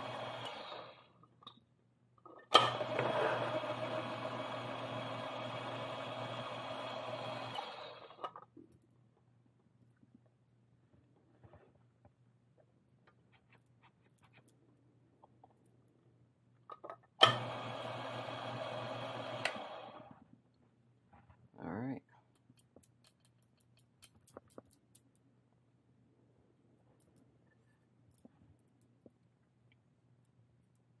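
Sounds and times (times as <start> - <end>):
coffee grinder motor: 0.0 - 1.0, 2.6 - 8.2, 17.2 - 20.1.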